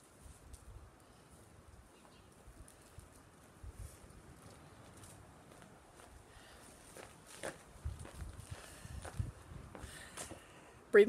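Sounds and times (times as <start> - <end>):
footsteps on dry grass: 3.8 - 10.4.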